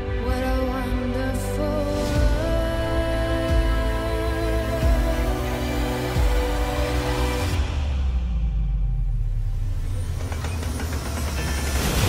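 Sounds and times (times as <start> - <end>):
machinery clicking and clattering: 9.9 - 12.0.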